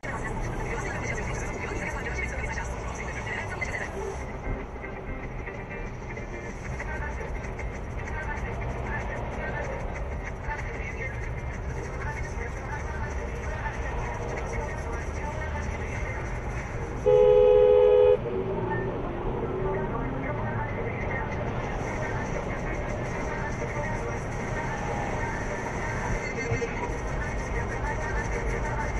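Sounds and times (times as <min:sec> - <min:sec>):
road and tyre noise in car: 0:00.0 - 0:28.9
two-tone car horn: 0:17.0 - 0:18.3.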